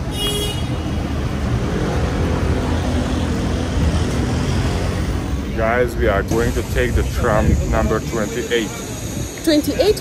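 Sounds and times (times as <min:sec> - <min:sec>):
low rumble of vehicles: 0:00.0 - 0:10.0
engine hum: 0:01.0 - 0:09.2.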